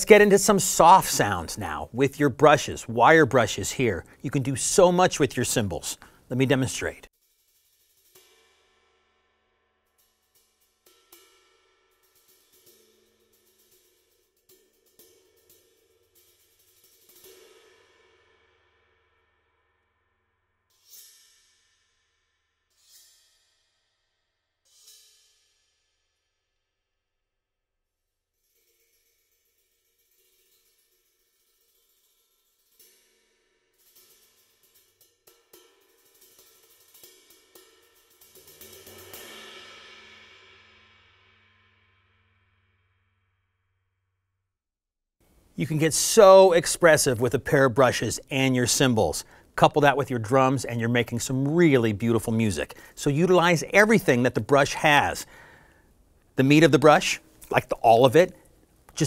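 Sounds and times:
cymbals played with brushes: 7.1s - 9.1s, 9.9s - 18.2s, 28.5s - 40.8s
sharp cymbal strokes ringing: 28.6s - 41.0s.

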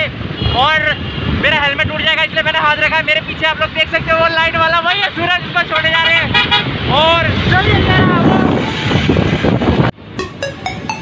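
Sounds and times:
wind buffeting microphone: 6.2s - 9.9s.

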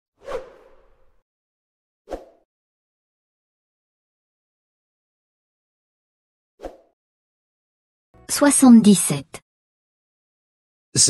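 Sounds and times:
whoosh swish: 0.2s - 1.1s.

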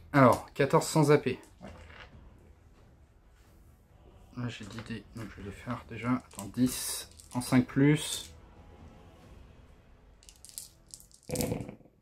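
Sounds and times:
dice clattering on mat: 6.2s - 7.5s, 10.2s - 11.6s
dice clicking in hand: 6.2s - 7.5s, 10.2s - 11.6s.

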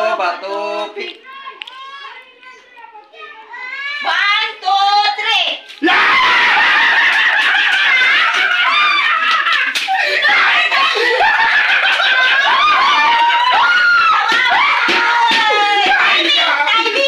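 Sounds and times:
people shrieking and screaming: 5.8s - 17.0s.

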